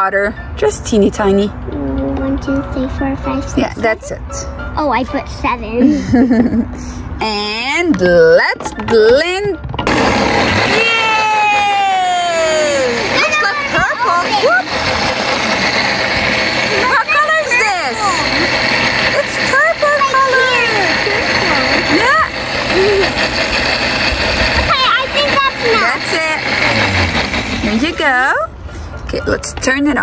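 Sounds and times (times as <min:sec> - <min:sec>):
blender running: 0:09.8 - 0:28.4.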